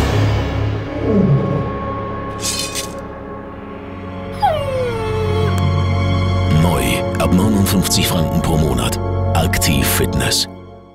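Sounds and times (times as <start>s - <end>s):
sustained music drone: 0.0s - 9.8s
dog-like whimper: 4.4s - 5.9s.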